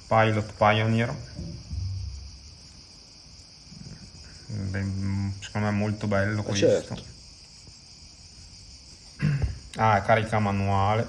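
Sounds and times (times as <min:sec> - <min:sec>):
steady high-pitched hiss: 0:00.0 - 0:11.0.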